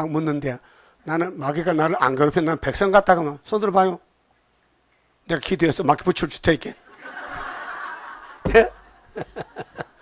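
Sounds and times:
man laughing: 8.4s - 10.0s.

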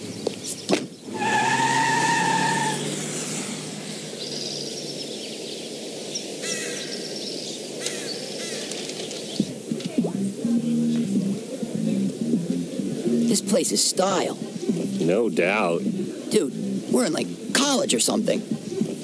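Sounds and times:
car pulling away: 0.0s - 6.4s
birds chirping: 0.0s - 19.0s.

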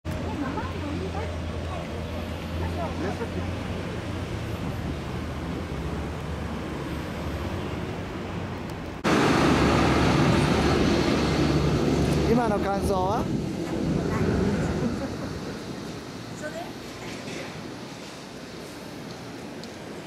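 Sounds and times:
traffic rumble: 0.0s - 20.0s.

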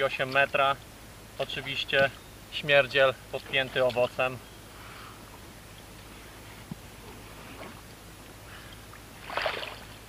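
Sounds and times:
low steady hum: 0.0s - 10.0s
soft rustling of fish and mat: 3.4s - 9.1s.

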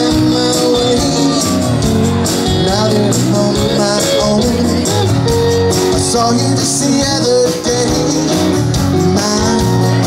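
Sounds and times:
country band playing: 0.0s - 10.0s
guitars: 0.0s - 10.0s
sustained melody line: 0.0s - 10.0s.

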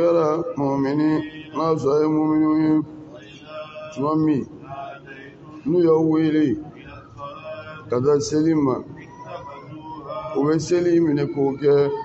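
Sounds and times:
man chanting a religious recitation: 0.0s - 12.0s.

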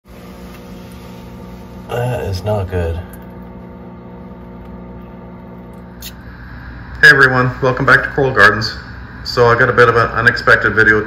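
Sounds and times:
equipment humming: 0.1s - 11.0s.

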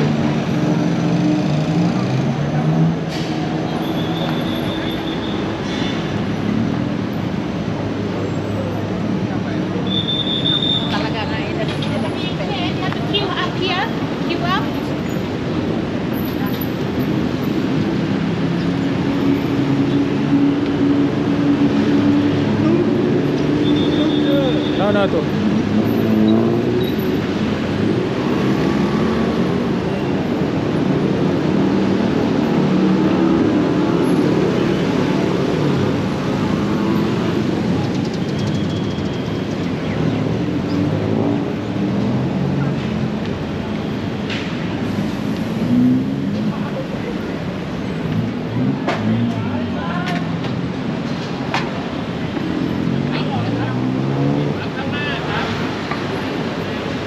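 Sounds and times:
car and motorbike engines: 0.0s - 57.0s
passers-by talking: 6.2s - 32.6s, 44.6s - 57.0s.

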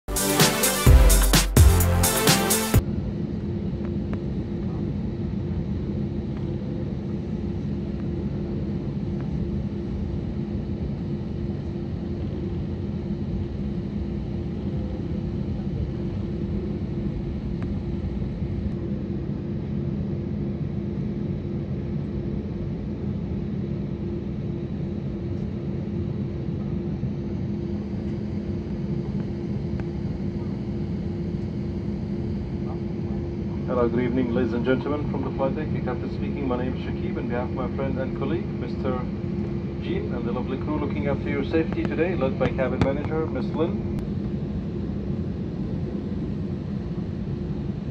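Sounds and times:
jet engines at taxi power: 2.0s - 47.9s.

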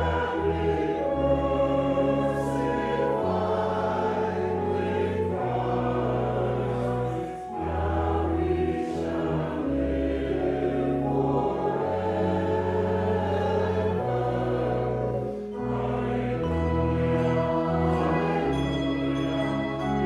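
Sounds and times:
congregation singing a hymn: 0.0s - 20.0s
organ playing: 0.0s - 20.0s.

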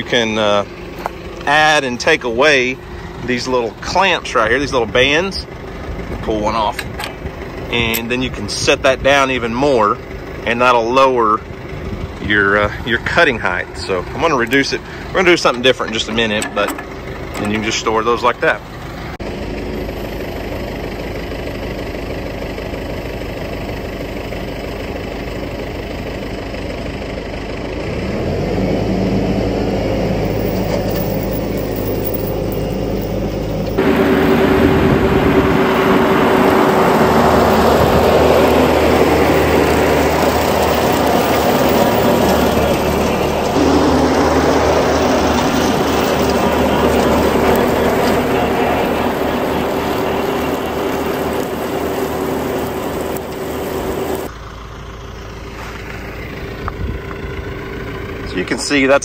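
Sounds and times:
tractor engine running: 0.0s - 59.0s
rotary cutter mowing grass: 29.9s - 54.3s.

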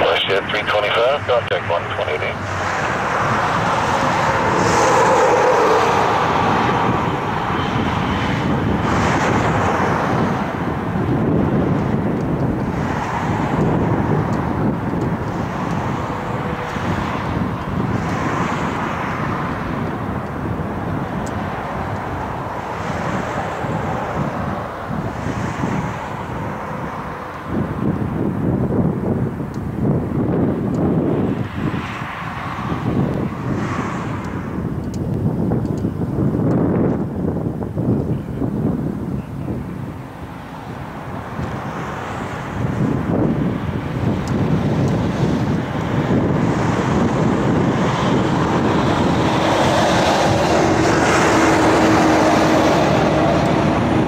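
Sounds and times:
engine whine: 0.0s - 54.0s
jet engine noise: 0.0s - 54.0s
wind buffeting microphone: 0.0s - 54.0s.

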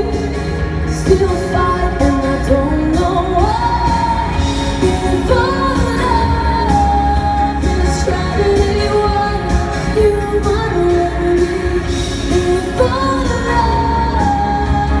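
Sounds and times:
pop band with steady bass: 0.0s - 15.0s.

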